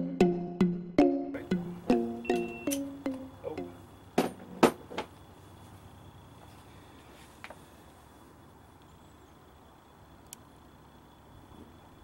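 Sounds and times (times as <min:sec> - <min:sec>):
plucked-string melody: 0:00.0 - 0:03.8.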